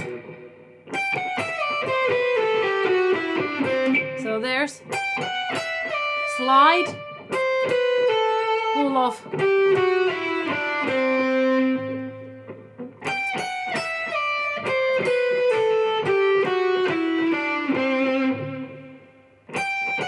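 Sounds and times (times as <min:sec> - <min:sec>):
electric guitar solo: 0:00.0 - 0:20.0.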